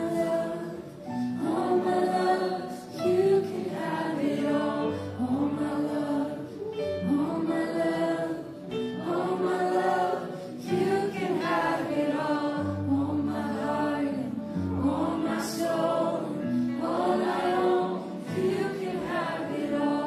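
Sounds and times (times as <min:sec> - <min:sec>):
several voices singing together: 0:00.0 - 0:20.0
worship band playing slow song: 0:00.0 - 0:20.0.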